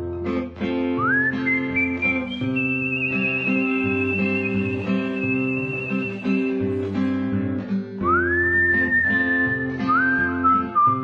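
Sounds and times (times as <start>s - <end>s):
acoustic guitar picking: 0.0s - 11.0s
whistled melody: 0.9s - 7.1s, 8.0s - 11.0s.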